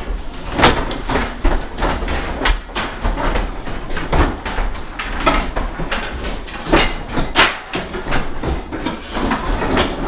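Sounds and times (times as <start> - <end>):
wooden boards clattering and cracking: 0.0 - 10.0.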